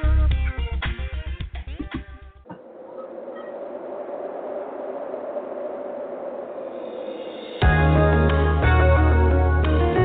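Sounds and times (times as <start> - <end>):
faint hum: 2.4 - 8.8.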